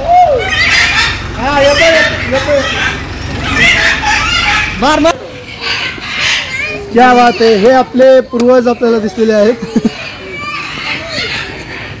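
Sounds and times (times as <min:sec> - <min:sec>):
bird calling: 0:00.0 - 0:12.0
people's voices: 0:00.0 - 0:12.0.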